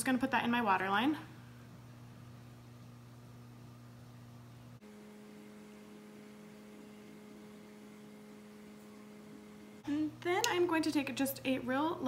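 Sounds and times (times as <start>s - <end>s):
higher-pitched hum: 4.8s - 10.8s
faint background hum: 6.8s - 12.0s.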